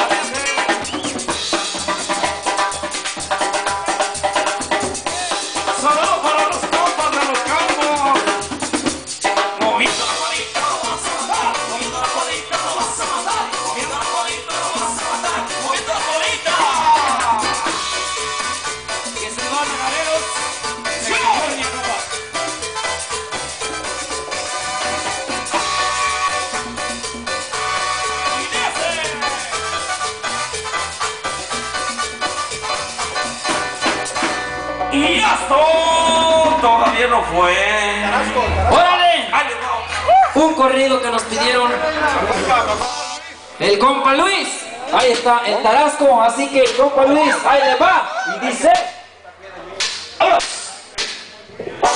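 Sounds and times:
drum kit beat: 0.0s - 43.2s
repeating bass notes: 0.0s - 44.2s
brass band music: 0.0s - 47.8s
gliding melody line: 17.4s - 39.9s.

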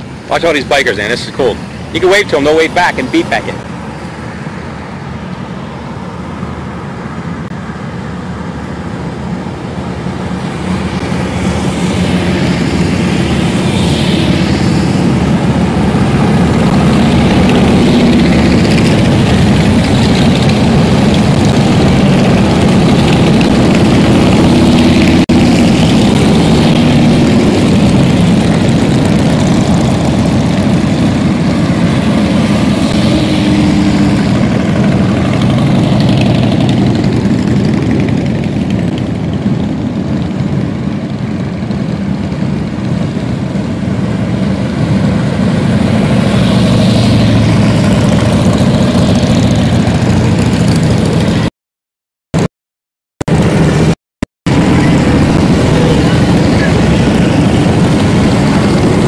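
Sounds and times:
motorcycles riding past: 8.6s - 51.5s, 54.5s - 59.0s.

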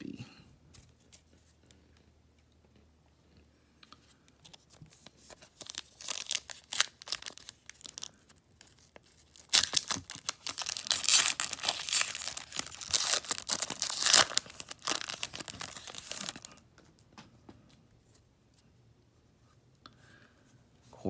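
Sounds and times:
foil pack crinkling and tearing: 4.6s - 16.6s.

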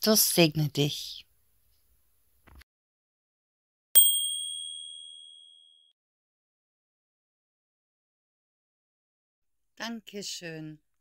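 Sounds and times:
small bell ding: 4.0s - 5.9s.

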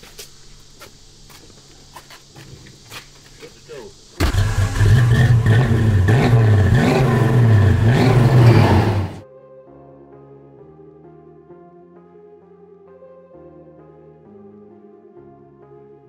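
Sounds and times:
car engine revving loud and deep: 4.2s - 9.2s.

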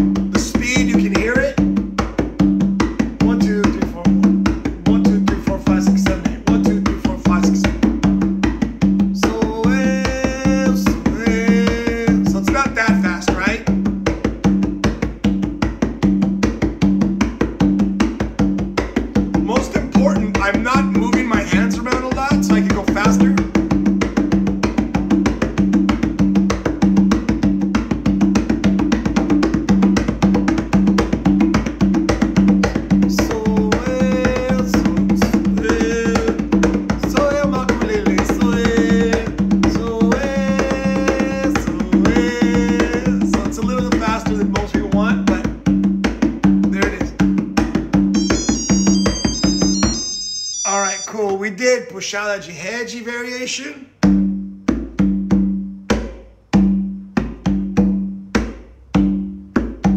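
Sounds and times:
conga drum played by hand: 0.0s - 51.2s, 53.9s - 59.9s
high electronic beeping: 48.1s - 51.3s.

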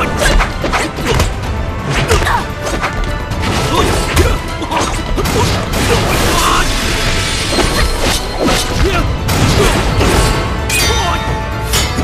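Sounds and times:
dramatic action music: 0.0s - 12.0s.

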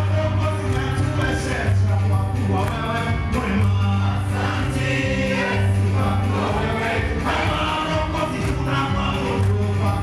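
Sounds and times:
band with bass line: 0.0s - 10.0s
man singing into microphone: 0.0s - 10.0s
choir voices: 2.6s - 10.0s.

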